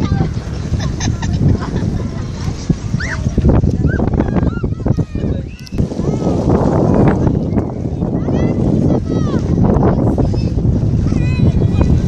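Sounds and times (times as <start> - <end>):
wind and beach noise: 0.0 - 12.0.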